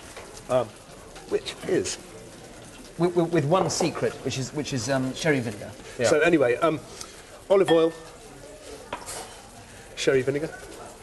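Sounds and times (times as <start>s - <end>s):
utensils and dishes clinking: 7.6s - 9.6s.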